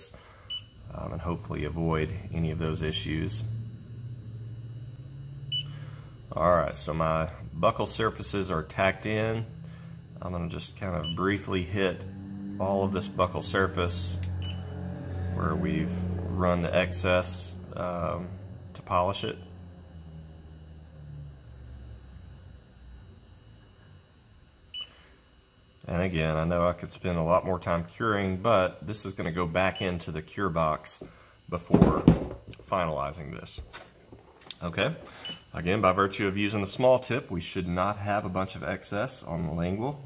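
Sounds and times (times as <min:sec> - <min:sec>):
steady low hum: 0:00.0 - 0:40.0
short high beep: 0:14.3 - 0:14.8.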